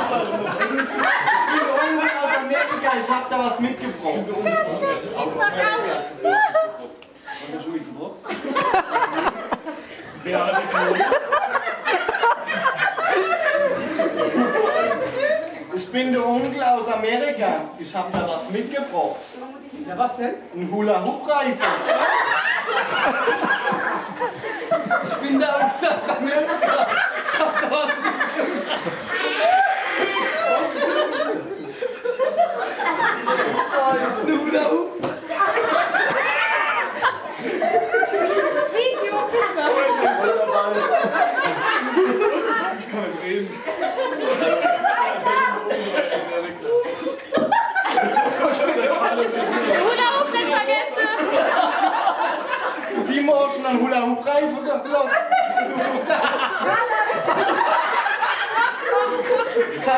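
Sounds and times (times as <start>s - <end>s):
group of people laughing: 0.0s - 15.9s, 21.0s - 59.9s.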